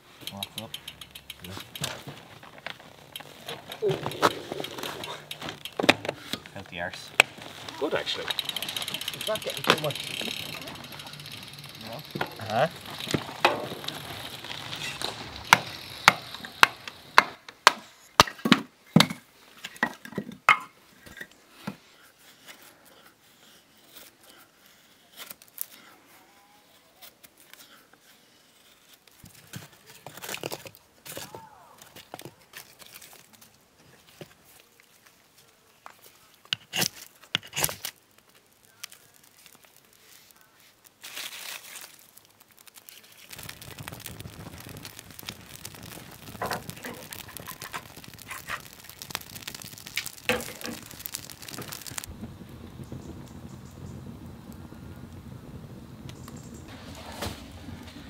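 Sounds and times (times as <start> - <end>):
wood rustling and cracking: 0.0 - 25.9, 27.0 - 53.7, 56.1 - 58.0
fire crackling: 0.0 - 58.0.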